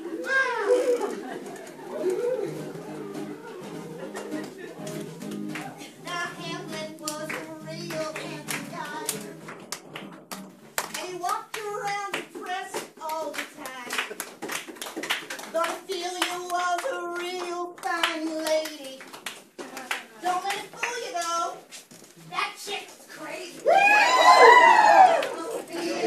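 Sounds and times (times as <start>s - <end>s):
hand claps: 4.0s - 21.4s.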